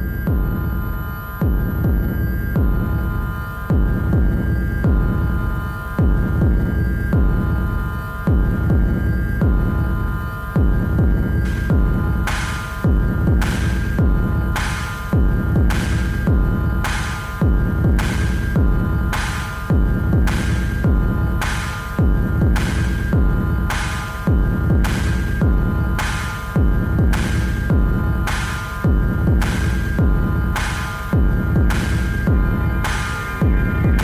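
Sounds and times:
experimental techno music: 0:00.0 - 0:34.0.

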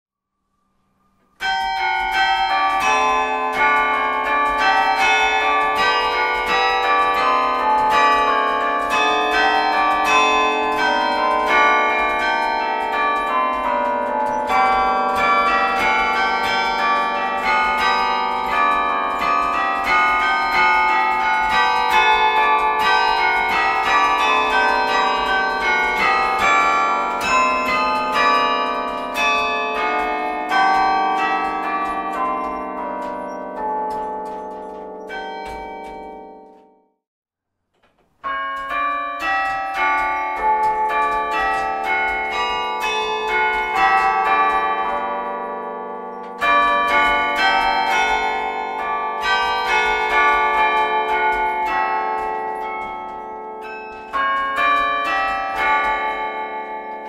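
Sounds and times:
carillon bells playing tune: 0:01.4 - 0:36.8, 0:38.2 - 0:57.0.

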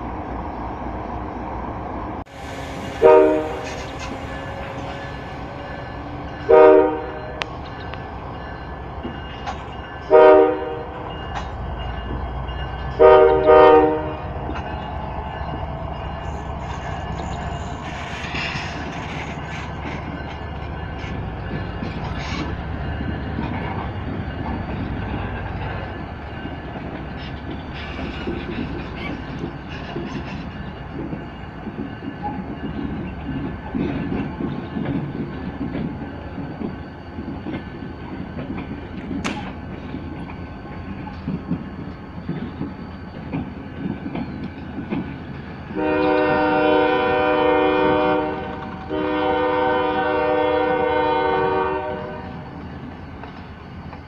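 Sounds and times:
diesel locomotives rumbling: 0:00.0 - 0:54.0
locomotive horn blasts: 0:02.3 - 0:07.5, 0:10.1 - 0:10.9, 0:12.9 - 0:14.4, 0:45.8 - 0:52.4.

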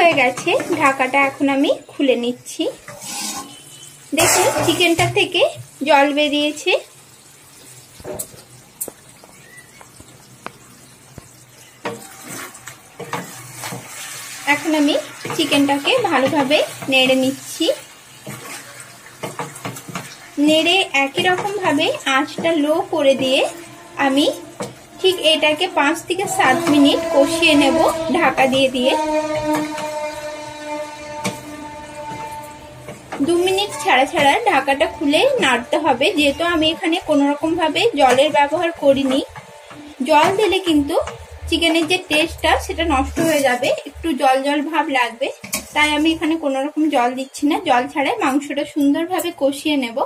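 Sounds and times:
spatula stirring and scraping: 0:00.0 - 0:02.0, 0:02.7 - 0:05.3, 0:11.3 - 0:44.0, 0:45.0 - 0:46.4
curry sizzling in a pan: 0:00.0 - 0:49.7
soft background music: 0:30.6 - 0:44.7.

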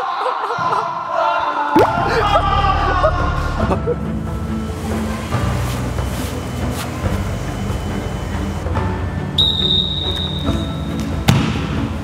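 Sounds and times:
background music: 0:01.7 - 0:12.0
football kick thud: 0:11.3 - 0:11.8.

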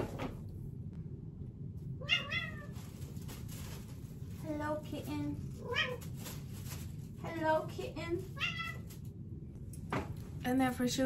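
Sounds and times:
cat meowing: 0:02.0 - 0:02.8, 0:08.3 - 0:08.9.

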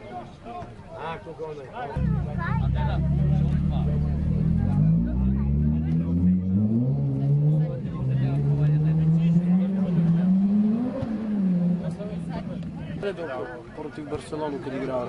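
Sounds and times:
vehicle engine revving: 0:02.0 - 0:13.1.

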